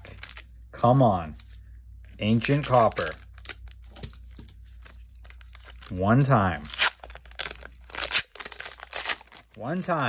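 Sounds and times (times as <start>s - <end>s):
foil wrapper crinkling: 0.0s - 9.9s
low steady hum: 0.0s - 10.0s.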